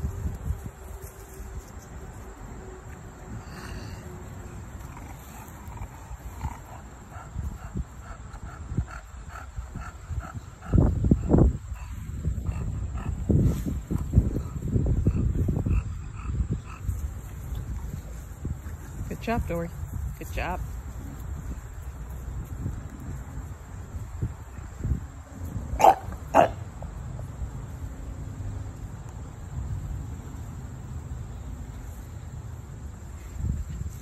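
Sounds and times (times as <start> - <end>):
rough low rumbling noise: 0.0 - 27.5
faint insects chirping: 0.0 - 34.0
puppy snorting and grunting: 4.8 - 7.3.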